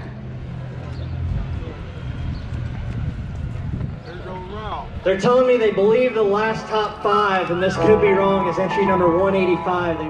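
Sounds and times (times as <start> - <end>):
faint crowd voices: 6.6 - 10.0.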